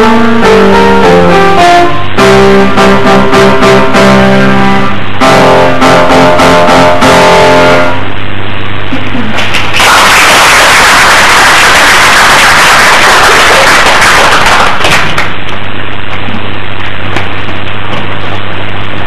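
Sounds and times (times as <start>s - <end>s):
audience applause: 9.5s - 15.4s.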